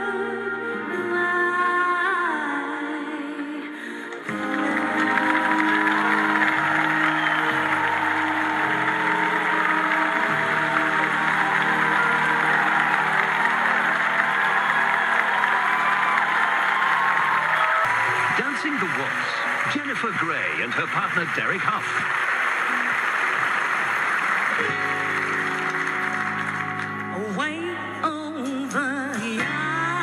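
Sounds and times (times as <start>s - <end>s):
slow waltz music: 0.0s - 16.0s, 24.5s - 30.0s
audience applauding: 4.1s - 27.3s.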